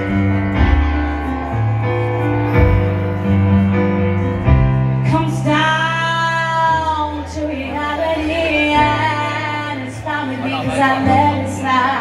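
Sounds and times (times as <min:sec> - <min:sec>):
piano chords: 0:00.0 - 0:12.0
woman singing a ballad: 0:05.0 - 0:12.0.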